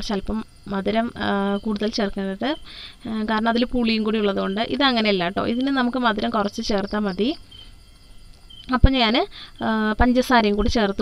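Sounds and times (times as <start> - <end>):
woman speaking: 0.0 - 7.4, 8.6 - 11.0
faint high-pitched chirring: 0.0 - 11.0.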